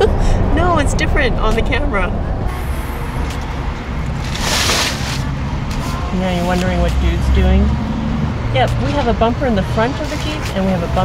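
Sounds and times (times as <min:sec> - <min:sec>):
road and engine rumble: 0:00.0 - 0:11.0.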